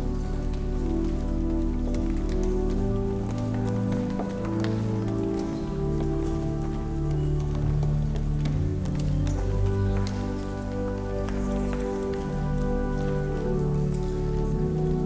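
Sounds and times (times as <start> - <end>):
church organ chords: 0.0 - 15.0
footsteps and shuffling: 0.0 - 15.0.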